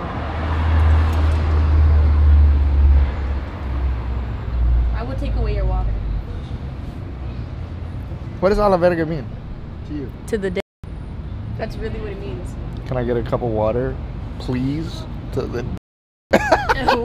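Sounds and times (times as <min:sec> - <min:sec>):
vehicle passing with low rumble: 0:00.0 - 0:15.8.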